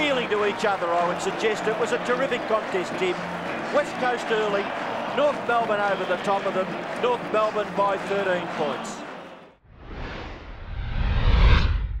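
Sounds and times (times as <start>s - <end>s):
whoosh: 9.6s - 12.0s
deep rumble: 9.7s - 12.0s.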